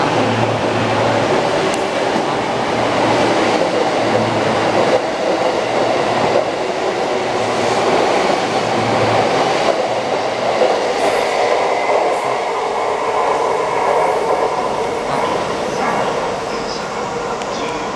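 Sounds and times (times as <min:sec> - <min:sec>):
electric train wheels rumbling: 0:00.0 - 0:17.9.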